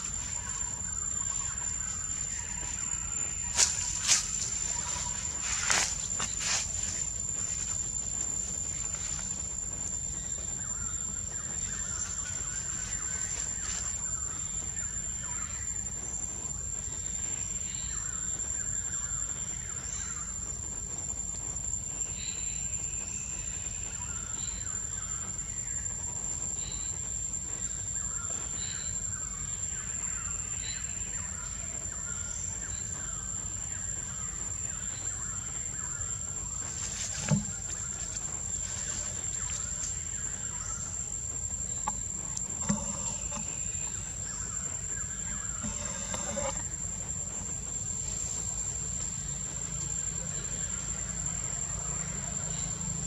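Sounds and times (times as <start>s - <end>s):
high-pitched insect drone: 0.0s - 53.0s.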